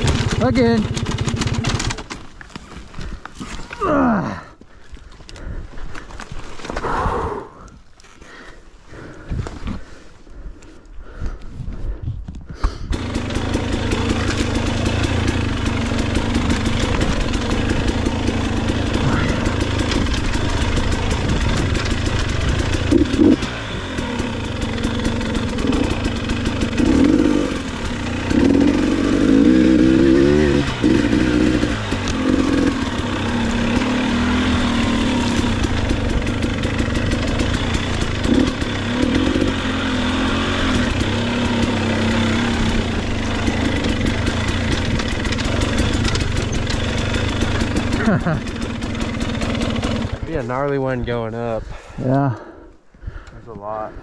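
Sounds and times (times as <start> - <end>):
dirt bike engine revving: 0.0 - 2.2, 12.9 - 51.0.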